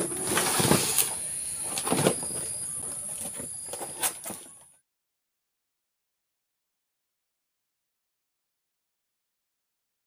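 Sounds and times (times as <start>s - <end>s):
cardboard box rustling and scraping: 0.0s - 4.6s
steady high-pitched whine: 0.0s - 4.8s.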